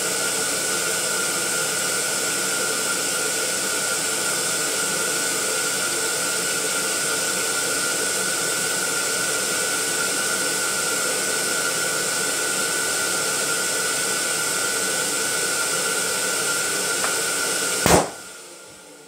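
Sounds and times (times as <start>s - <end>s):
air pump running: 0.0s - 18.3s.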